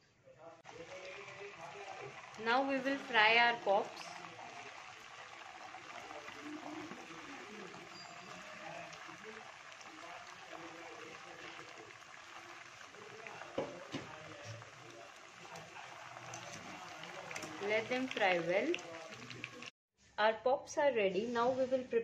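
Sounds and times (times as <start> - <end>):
dough frying in hot oil: 0.6 - 19.7.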